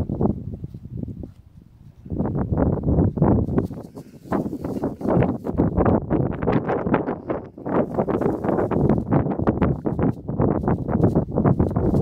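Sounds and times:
hay rustling under goat hooves: 3.3s - 5.6s, 7.7s - 10.1s.

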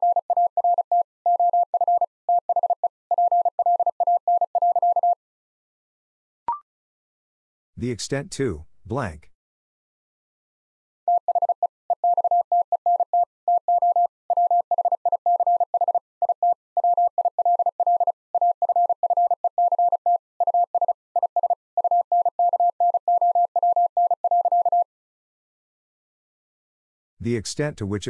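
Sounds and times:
morse code tone: 11.1s - 24.8s.

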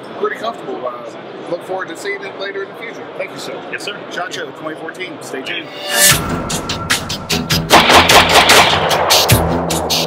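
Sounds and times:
music with steady bass line: 5.8s - 10.0s.

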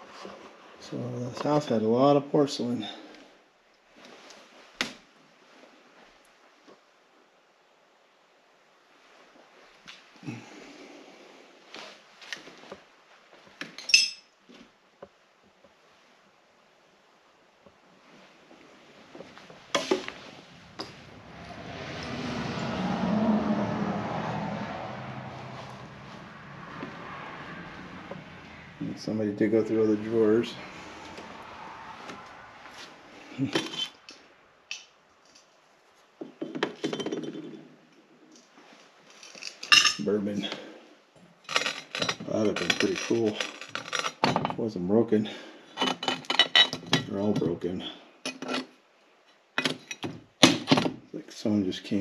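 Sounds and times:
ceramic pieces clattering: 13.8s - 14.3s, 39.2s - 40.0s, 41.5s - 44.6s, 45.8s - 47.1s
glass clinking with short ring: 13.8s - 14.3s.

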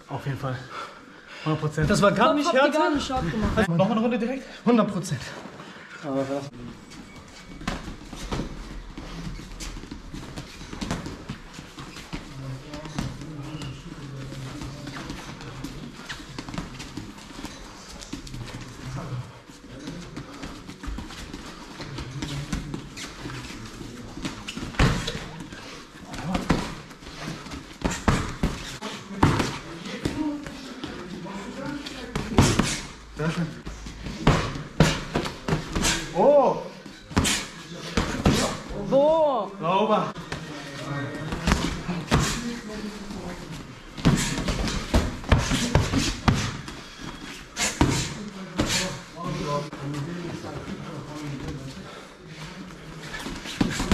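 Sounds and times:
shuffling footwork on mat: 6.6s - 39.3s, 40.1s - 53.9s.

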